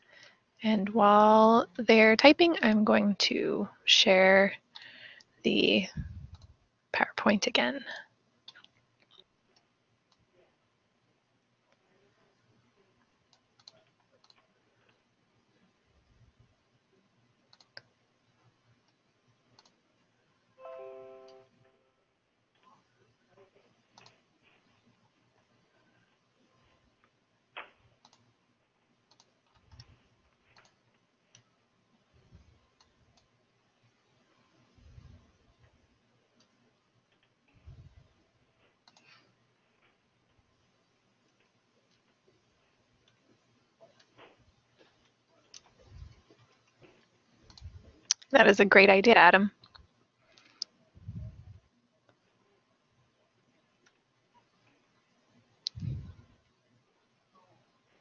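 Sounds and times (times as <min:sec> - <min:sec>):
faint clicks: 0:06.3 - 0:06.6, 0:13.3 - 0:15.0, 0:17.5 - 0:19.8, 0:23.9 - 0:24.6, 0:27.0 - 0:28.3, 0:29.0 - 0:31.5, 0:38.6 - 0:40.0, 0:43.9 - 0:48.3, 0:49.6 - 0:50.8
computer clicks: 0:13.3 - 0:14.4, 0:17.5 - 0:17.9, 0:18.9 - 0:19.8, 0:23.9 - 0:24.2, 0:27.6 - 0:28.3, 0:29.1 - 0:31.4.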